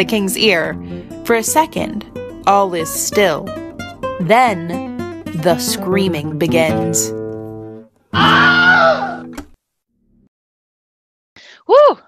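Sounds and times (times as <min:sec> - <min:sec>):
acoustic guitar chord: 0:00.1 - 0:07.9
person screaming: 0:08.1 - 0:09.3.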